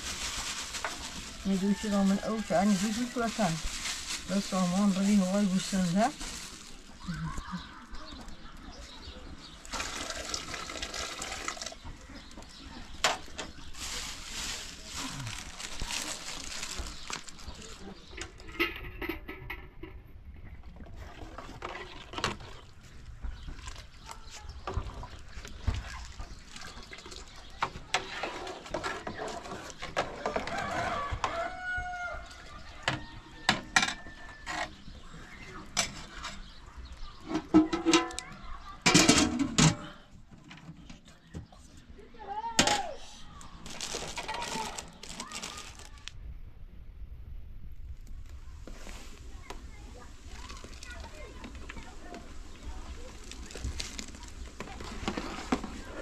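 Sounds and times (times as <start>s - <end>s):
beans being handled: 0.0s - 8.4s, 9.6s - 18.1s, 43.4s - 46.1s, 48.6s - 56.0s
plastic bag rustling: 0.0s - 8.4s, 9.4s - 18.5s, 43.3s - 46.2s, 48.6s - 56.0s
ladle stirring boiling water: 48.9s - 56.0s.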